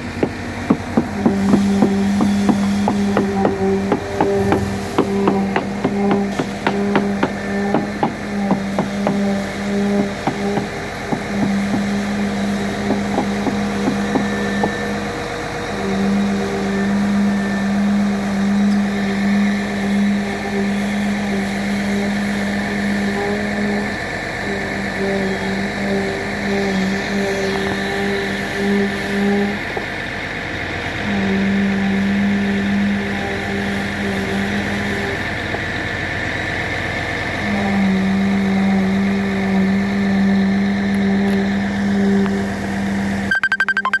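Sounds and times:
concrete vibrator humming: 0:00.0 - 0:44.0
engine running steadily: 0:00.0 - 0:44.0.

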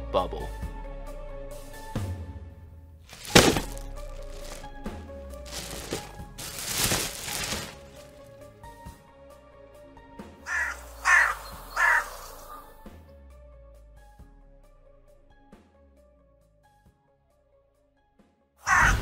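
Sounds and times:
background music: 0:00.0 - 0:19.0
crow cawing: 0:10.5 - 0:12.8, 0:18.6 - 0:19.0.

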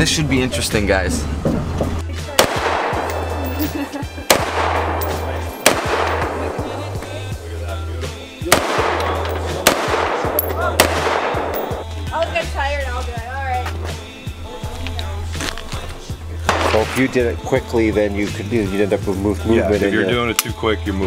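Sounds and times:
background music with deep bass: 0:00.0 - 0:21.0
echoing gunshots: 0:02.4 - 0:03.6, 0:04.3 - 0:06.9, 0:08.4 - 0:11.9, 0:16.5 - 0:17.0.

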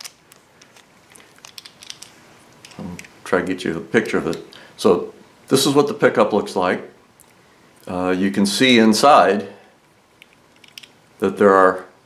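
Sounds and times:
small part clicking in fingers: 0:10.2 - 0:10.9.

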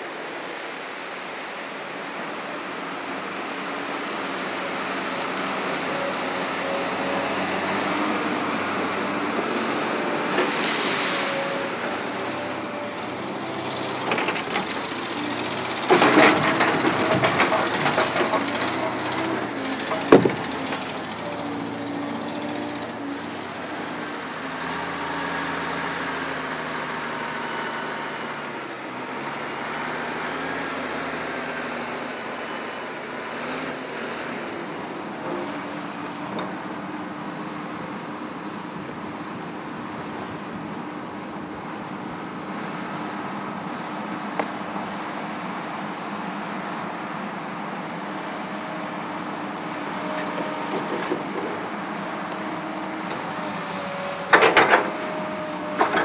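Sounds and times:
diesel loader engines running: 0:00.0 - 0:56.0
logs knocking and clattering: 0:15.9 - 0:20.8.

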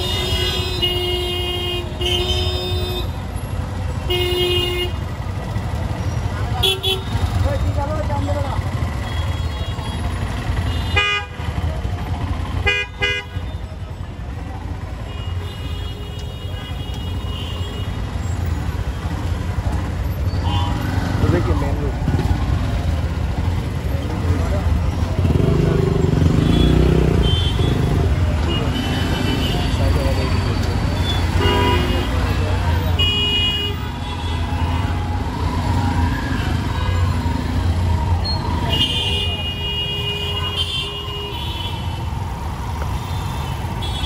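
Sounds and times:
traffic engines running: 0:00.0 - 0:44.0.

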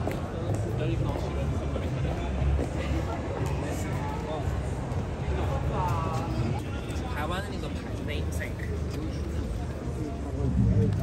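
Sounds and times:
passers-by talking: 0:00.0 - 0:11.0
low traffic rumble: 0:08.0 - 0:11.0.

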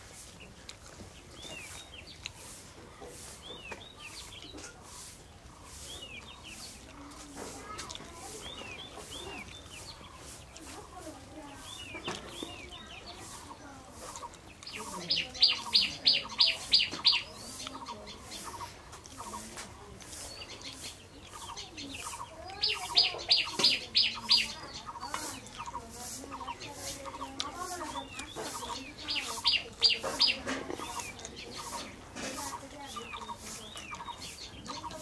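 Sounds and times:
soft bird chirps: 0:00.1 - 0:35.0.

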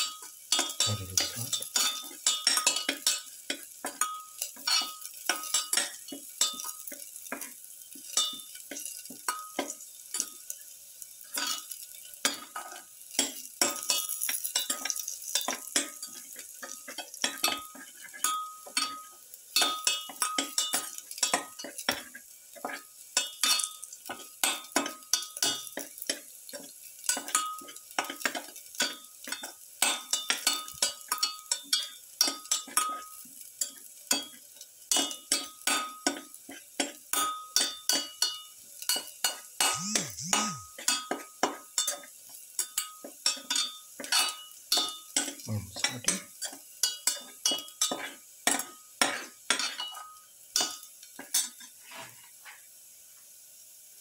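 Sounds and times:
garlic sizzling in oil: 0:00.0 - 0:39.8, 0:40.7 - 0:54.0.

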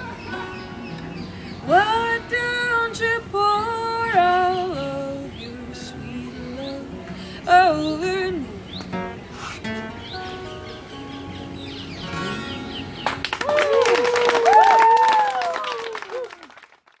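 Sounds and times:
acoustic guitar strumming: 0:00.0 - 0:13.3
audience clapping and cheering: 0:13.0 - 0:17.0
person shouting whoo: 0:13.5 - 0:16.4.

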